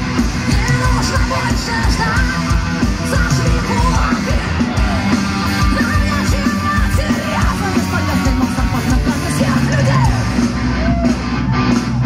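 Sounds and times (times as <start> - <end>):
fast drum beat: 0.0 - 12.0
live rock band playing: 0.0 - 12.0
vocals: 0.2 - 10.4.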